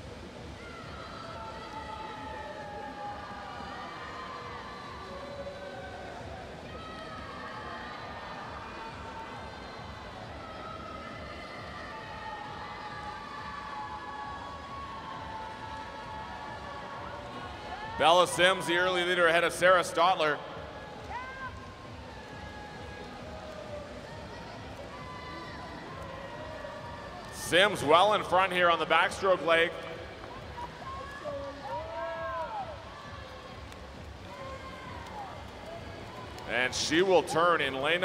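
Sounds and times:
crowd cheering: 0.0s - 38.0s.

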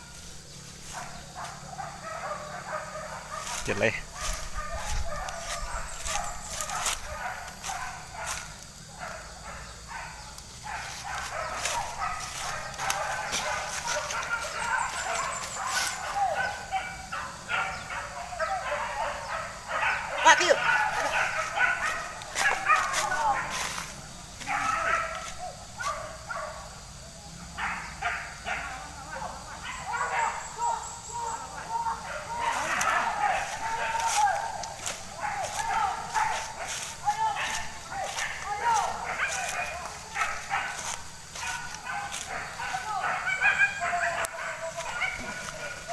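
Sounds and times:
dogs barking and yelping: 0.0s - 45.9s.

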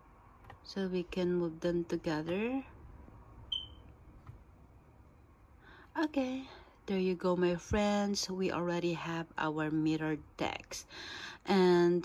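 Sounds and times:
short high-pitched beep: 3.5s - 3.8s.

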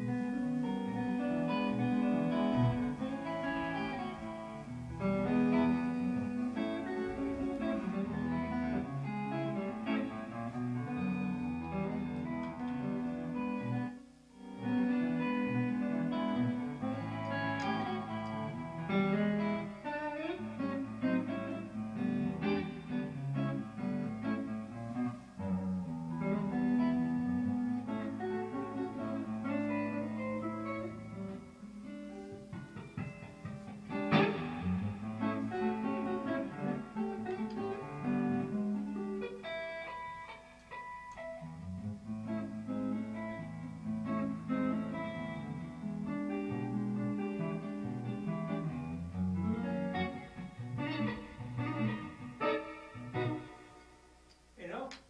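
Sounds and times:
electric guitar melody: 0.0s - 55.0s.

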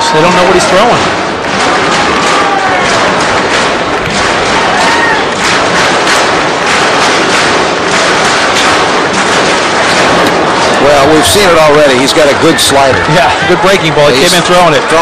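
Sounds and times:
crowd clapping: 0.0s - 15.0s
crowd din of voices: 0.0s - 15.0s
crowd shouting: 0.0s - 15.0s.

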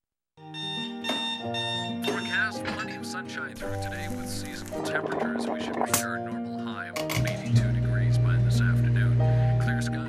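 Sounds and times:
sustained chords music: 3.6s - 6.5s, 7.2s - 10.0s.

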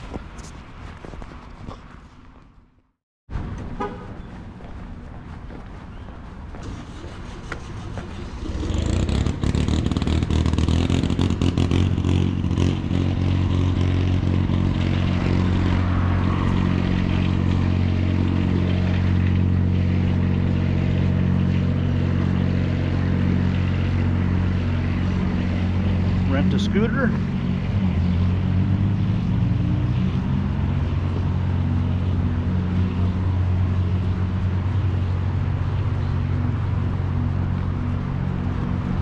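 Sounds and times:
engine running: 0.0s - 39.0s
traffic noise: 0.0s - 39.0s.

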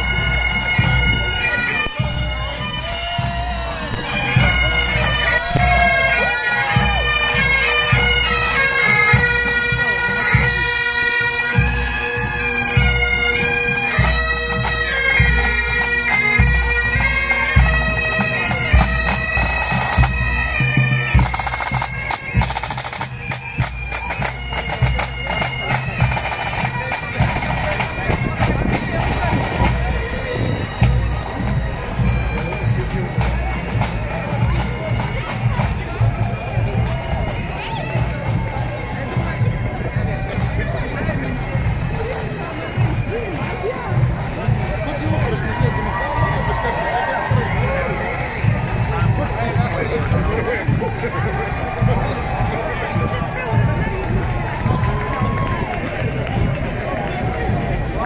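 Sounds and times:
bagpipes: 0.0s - 58.0s
crowd talking and calling: 0.0s - 58.0s.

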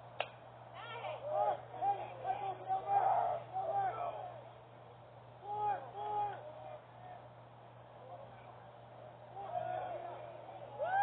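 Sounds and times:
voices shouting and cheering: 0.7s - 11.0s.

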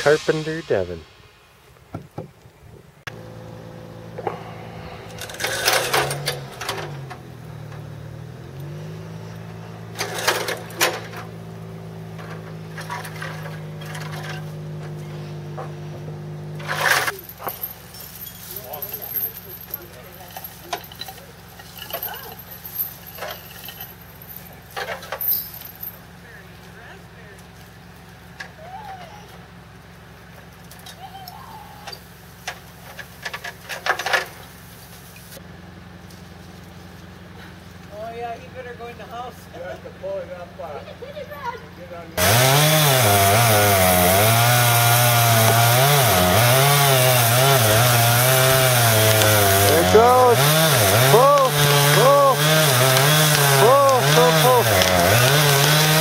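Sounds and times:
voices: 0.0s - 1.1s, 14.8s - 23.5s, 30.8s - 32.0s, 48.7s - 56.0s
small engine running: 3.1s - 28.3s, 29.1s - 56.0s.

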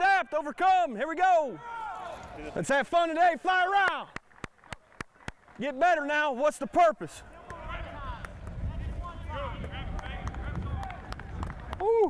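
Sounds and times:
man exclaiming ooh: 11.8s - 12.0s.

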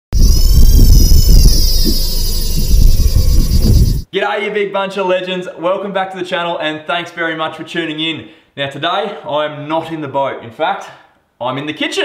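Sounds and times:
engine rumbling with high whine: 0.2s - 4.0s.

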